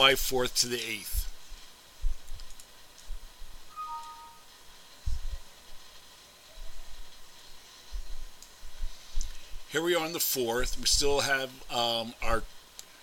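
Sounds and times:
two-note computer chime: 3.7 - 4.5.

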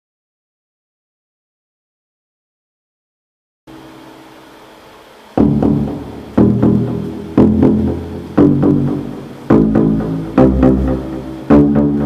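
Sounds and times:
synth stabs with deep bass: 5.4 - 12.0.

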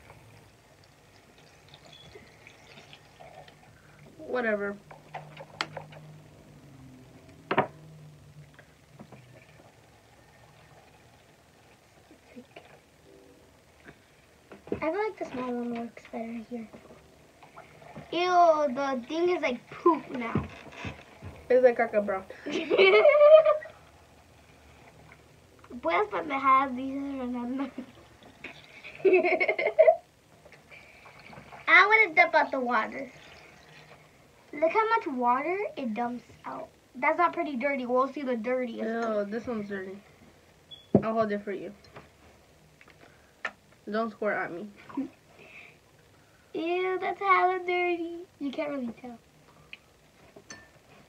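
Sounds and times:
small washing machine humming: 0.0 - 51.0
girl giggling: 22.3 - 23.8, 28.8 - 30.0.

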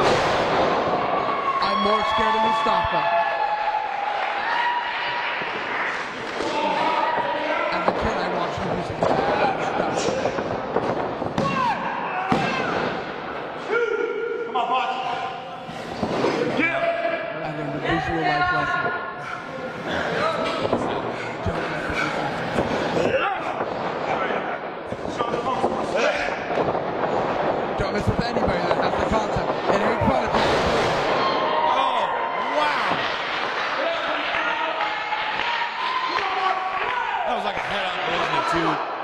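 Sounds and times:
people talking and calling out: 5.1 - 39.0.

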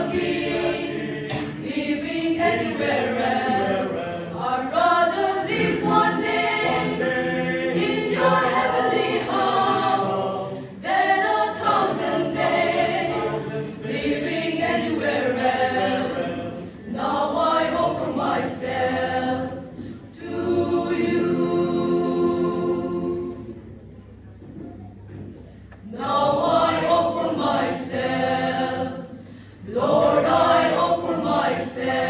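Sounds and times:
mixed choir singing a hymn: 0.0 - 23.8, 25.8 - 32.0.

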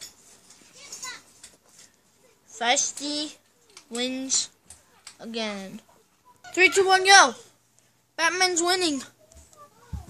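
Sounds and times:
faint children's voices: 0.5 - 7.6, 8.2 - 10.0.

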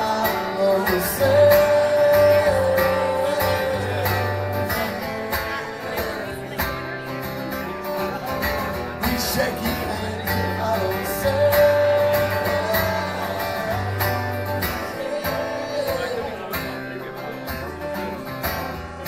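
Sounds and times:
man singing: 0.0 - 18.4
strummed acoustic guitar: 0.0 - 19.0.

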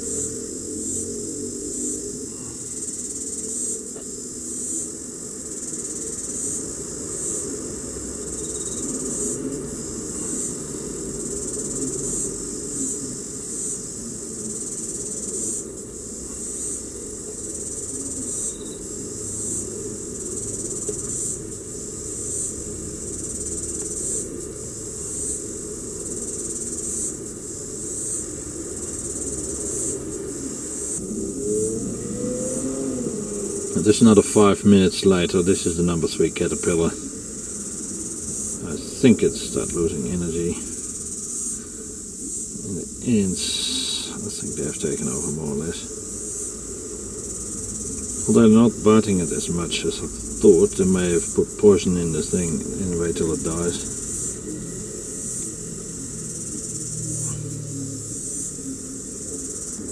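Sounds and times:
insects chirring: 0.0 - 59.9.

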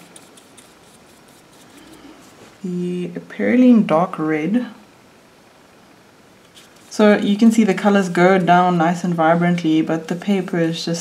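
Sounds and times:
brush scratching on paper: 0.0 - 2.6, 6.5 - 7.2
low room hiss: 0.0 - 11.0.

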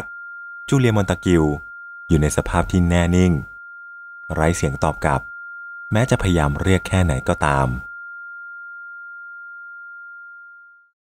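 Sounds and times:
high-pitched ringing tone: 0.0 - 11.0.

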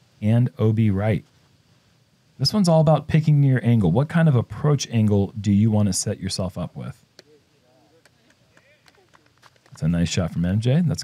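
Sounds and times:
faint outdoor ambience: 0.0 - 11.0
distant voices: 5.7 - 11.0.

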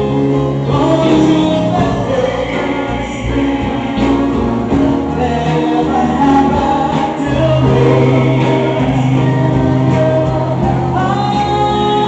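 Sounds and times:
live soul band playing: 0.0 - 12.0.

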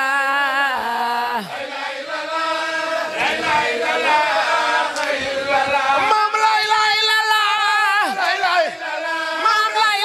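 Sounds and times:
group chanting: 0.0 - 10.0.

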